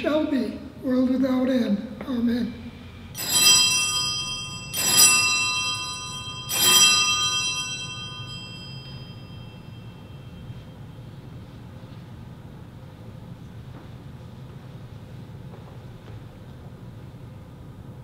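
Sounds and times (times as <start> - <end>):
small brass bells ringing: 3.2 - 10.8.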